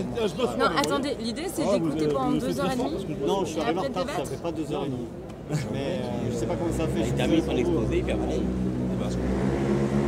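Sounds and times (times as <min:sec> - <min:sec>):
low engine drone: 0:06.7 - 0:10.0.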